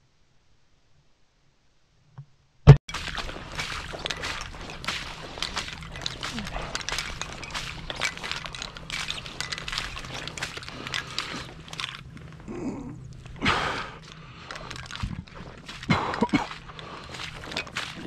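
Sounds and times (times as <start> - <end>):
footsteps through wet grass: 2.9 - 18.0.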